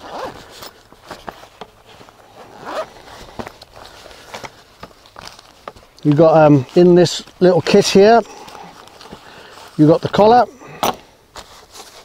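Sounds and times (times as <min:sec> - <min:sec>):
zipper being drawn open: 0:00.0 - 0:00.8, 0:02.2 - 0:03.4
clicks and rustles of a case: 0:00.0 - 0:07.8, 0:08.4 - 0:12.0.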